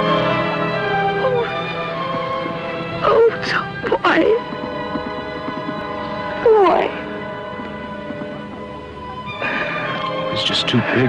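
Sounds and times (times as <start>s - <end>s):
orchestral sustained chords: 0.0s - 11.0s.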